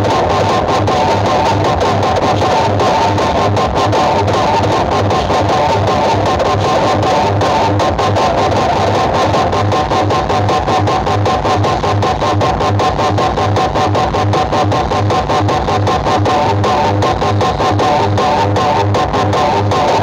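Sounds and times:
loud music with guitar: 0.0s - 20.0s
repeating bass beat: 0.0s - 20.0s.

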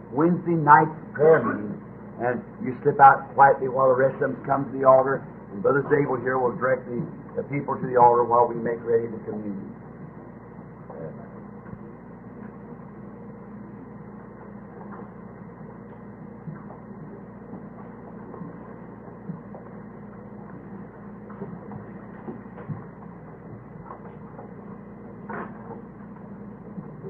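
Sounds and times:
recording hum and hiss: 0.0s - 27.0s.

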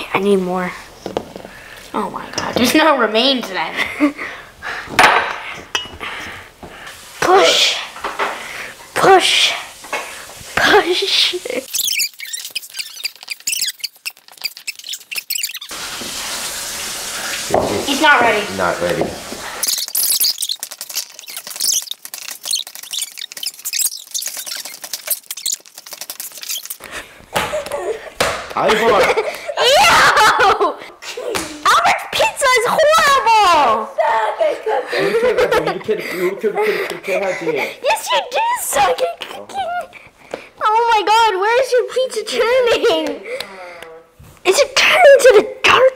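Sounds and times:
dough being kneaded: 9.8s - 16.4s, 17.4s - 29.5s.

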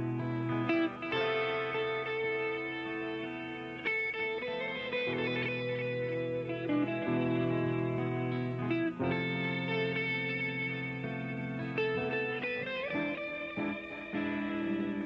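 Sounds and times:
electric guitar chords: 0.0s - 15.0s.

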